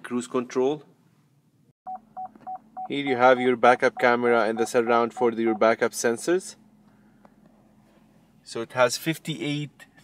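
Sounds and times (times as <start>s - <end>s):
backup sensor warning beeps: 1.9s - 5.6s.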